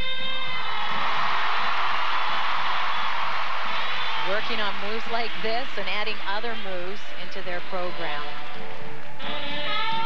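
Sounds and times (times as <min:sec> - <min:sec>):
audience applauding: 0:00.6 - 0:05.6.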